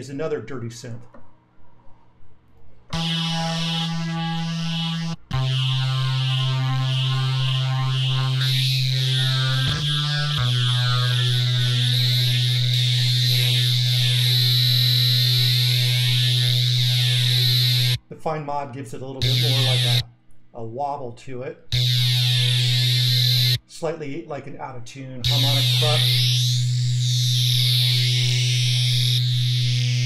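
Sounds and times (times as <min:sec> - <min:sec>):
dirty buzzy synth bass: 0:02.9 - 0:18.0, 0:19.2 - 0:20.1, 0:21.7 - 0:23.7, 0:25.2 - 0:30.0.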